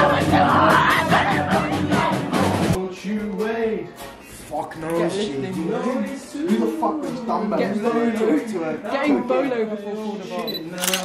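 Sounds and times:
live band with drums and guitar: 0.0s - 7.4s.

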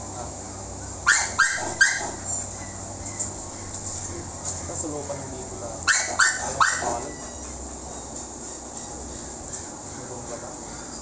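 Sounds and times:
dog barking: 1.1s - 2.2s, 5.8s - 7.0s.

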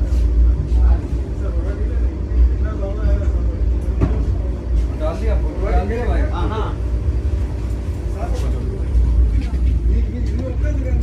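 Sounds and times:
faint voices talking: 0.0s - 11.0s
train cab low rumble: 0.0s - 11.0s.

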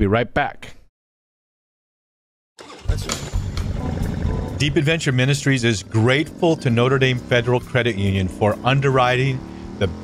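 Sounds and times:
motorcycle engine rumbling: 2.6s - 10.0s.

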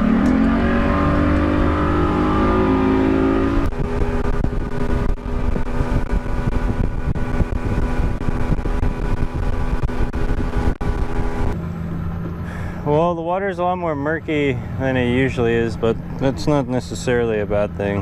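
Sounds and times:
motorboat engine revving: 0.0s - 18.0s
water rushing along hull: 0.0s - 18.0s.

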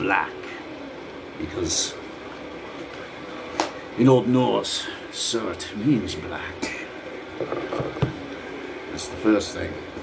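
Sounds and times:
air-conditioning hum: 0.0s - 10.0s
bottle knocking on desk: 7.4s - 8.2s.

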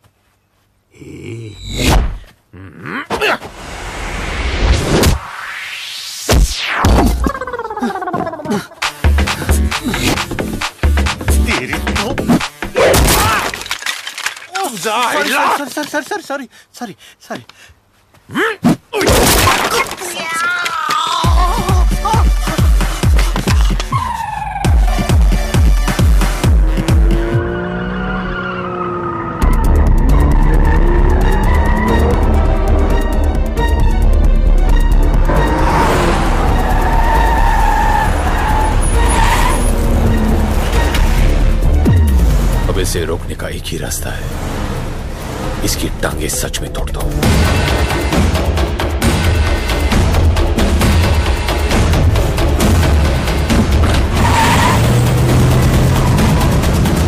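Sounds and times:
man's voice: 10.9s - 12.4s, 14.5s - 17.6s, 45.6s - 47.4s
wooden chair smashing: 12.8s - 15.9s
man yelling: 14.5s - 15.8s
car engine passing fast: 26.8s - 33.0s, 35.2s - 42.7s, 44.0s - 45.9s.

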